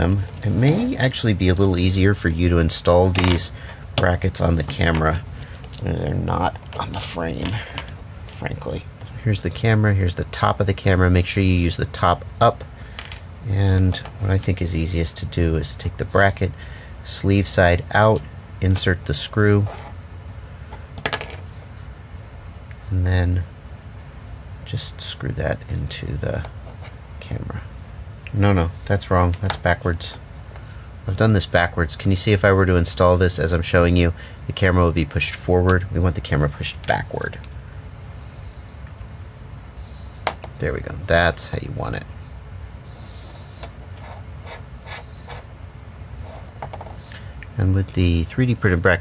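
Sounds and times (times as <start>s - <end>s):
faint low room hum: 0.0s - 49.0s.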